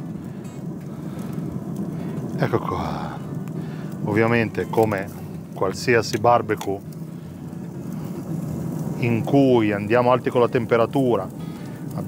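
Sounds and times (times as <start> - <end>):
grill fire and fan rumbling: 0.0 - 12.0.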